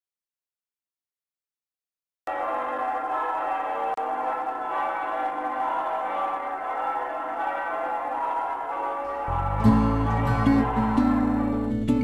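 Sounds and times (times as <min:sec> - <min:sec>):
sustained instrumental chords: 0:08.2 - 0:12.0.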